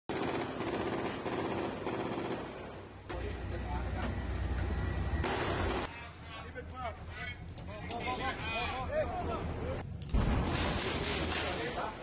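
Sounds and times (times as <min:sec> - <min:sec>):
automatic gunfire: 0:00.1 - 0:02.6, 0:10.4 - 0:11.8.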